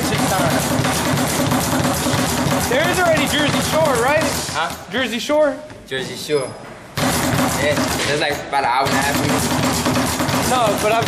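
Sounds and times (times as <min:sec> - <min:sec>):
speed bag being punched: 0:00.0 - 0:04.9, 0:07.0 - 0:11.0.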